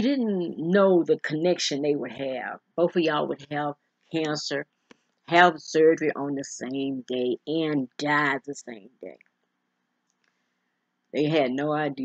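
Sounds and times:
person speaking: 0.0s - 4.6s, 5.3s - 9.1s, 11.2s - 12.0s.

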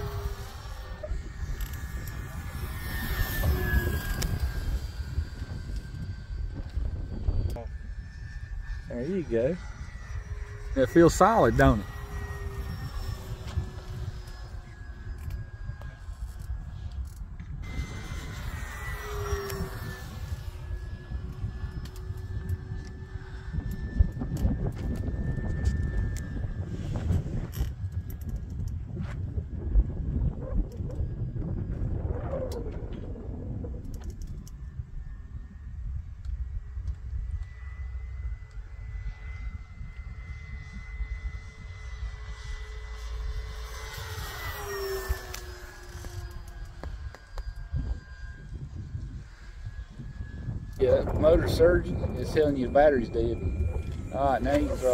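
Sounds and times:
model plane motor whine: 0.0s - 54.9s
wind rumble on microphone: 0.0s - 54.9s.

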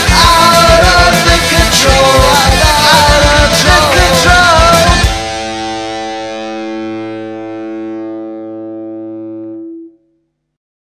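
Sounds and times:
distorted electric guitar chord ringing: 0.0s - 10.2s.

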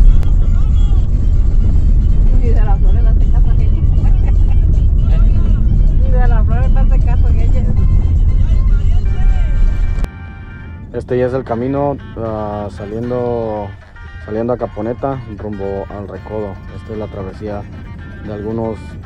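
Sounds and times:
voices: 0.0s - 9.8s
car tyres rumbling on cobblestones: 0.0s - 10.1s.

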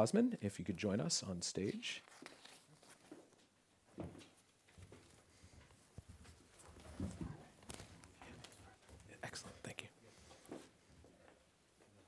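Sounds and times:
chairs knocking and rustling: 6.2s - 8.2s
faint hushed voices: 7.0s - 12.0s.

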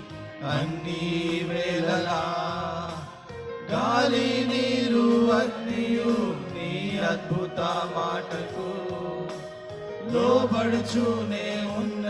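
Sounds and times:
men singing worship song: 0.1s - 12.0s.

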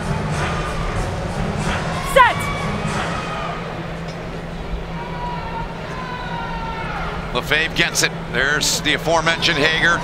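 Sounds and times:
stadium crowd hum: 0.0s - 10.0s.

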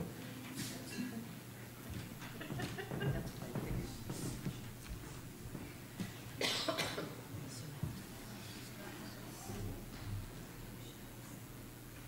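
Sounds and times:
large room hush: 0.0s - 12.0s
person coughing: 6.4s - 7.2s.

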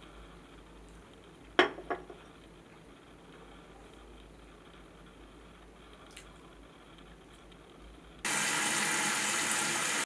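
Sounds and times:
tap water running into sink: 8.3s - 10.0s.

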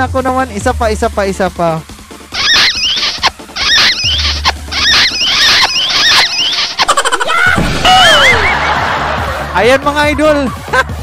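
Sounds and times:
background music with squeaky glides: 0.2s - 9.0s
wavering sliding tone: 2.4s - 7.3s.

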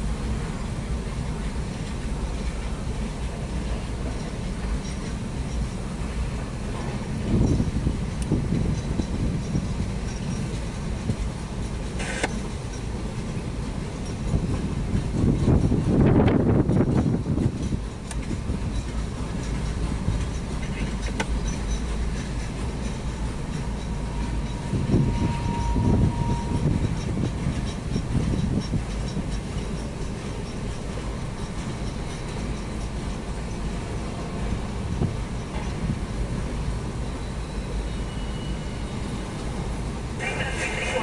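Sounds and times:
train wheels rumbling on rails: 0.0s - 41.0s
thin wheel squeal: 23.8s - 27.7s, 37.0s - 39.1s.

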